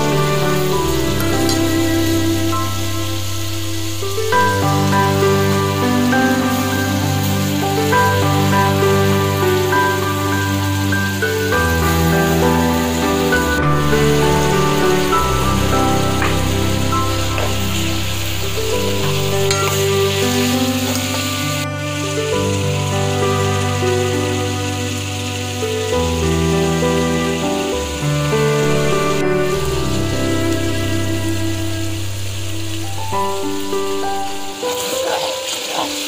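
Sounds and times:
soft background music chords: 0.0 - 35.7
onions sizzling in oil: 0.0 - 36.0.

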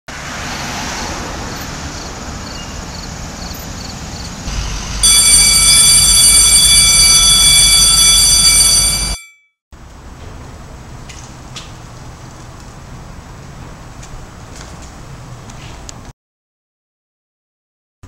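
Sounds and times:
car passing: 0.1 - 7.0
traffic noise: 0.1 - 9.2, 9.8 - 16.1
high ringing tone: 4.5 - 9.5.

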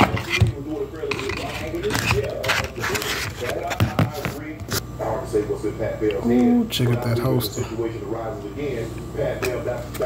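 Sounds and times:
person talking: 6.2 - 6.8.

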